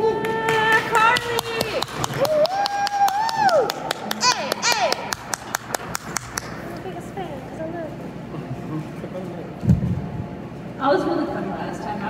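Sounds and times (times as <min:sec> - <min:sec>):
small audience clapping: 0:00.2 - 0:06.7.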